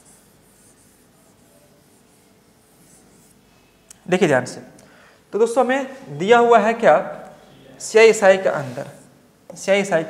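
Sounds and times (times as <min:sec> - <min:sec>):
chalk scratching on blackboard: 0:00.0 - 0:03.4.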